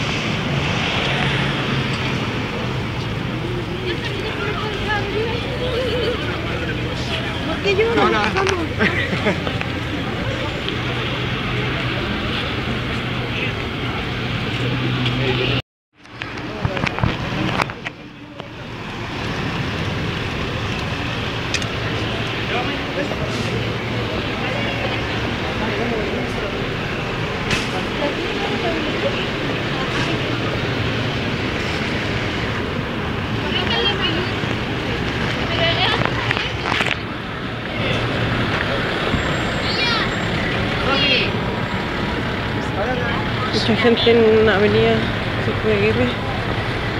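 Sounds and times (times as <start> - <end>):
crowd chatter: 0.0 - 46.9
vehicle engine hum: 0.0 - 46.9
voices in the street: 0.0 - 46.9.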